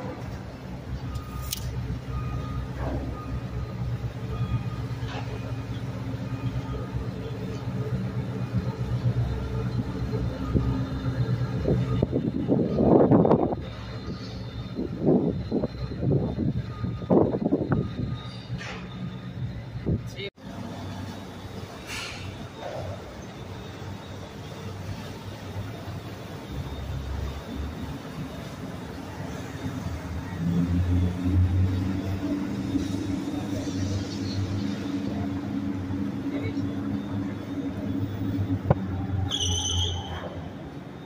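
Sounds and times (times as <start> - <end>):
boat diesel engine droning: 0.0 - 41.0
voices: 28.4 - 41.0.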